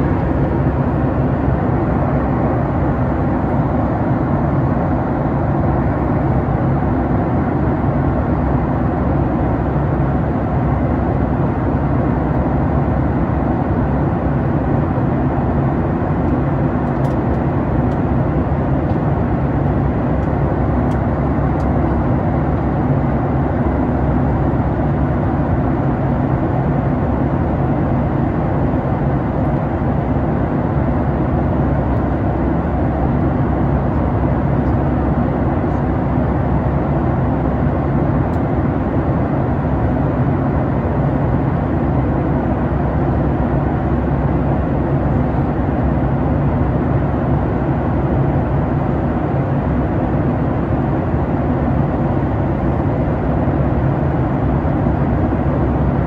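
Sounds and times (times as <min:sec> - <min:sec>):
airflow noise: 0:00.0 - 0:07.8
airplane cabin engine hum: 0:00.0 - 0:56.0.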